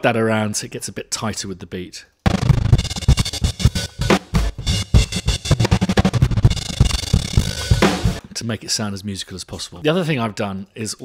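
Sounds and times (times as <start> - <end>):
stuttering drum loop: 2.3 - 8.5.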